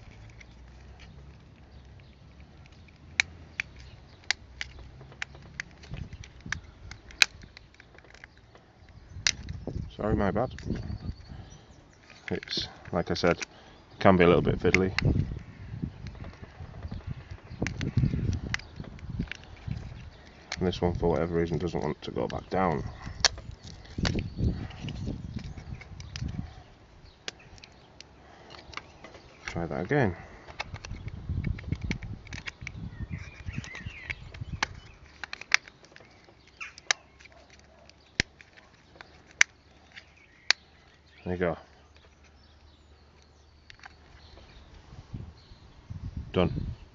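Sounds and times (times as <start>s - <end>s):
plastic case clicking: 0.0s - 9.6s, 12.0s - 13.6s, 16.0s - 26.5s, 27.1s - 40.9s, 41.9s - 44.5s
handling and rubbing noise: 0.0s - 15.3s, 16.0s - 45.2s.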